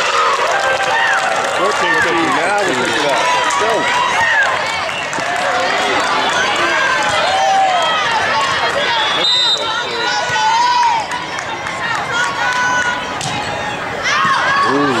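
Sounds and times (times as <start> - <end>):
voices echoing in gym hall: 1.6 - 4.8, 5.5 - 15.0.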